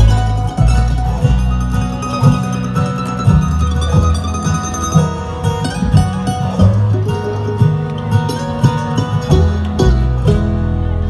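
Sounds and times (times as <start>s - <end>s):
acoustic guitar picking: 0.0s - 11.0s
banjo picking: 0.0s - 11.0s
upright bass line: 0.0s - 11.0s.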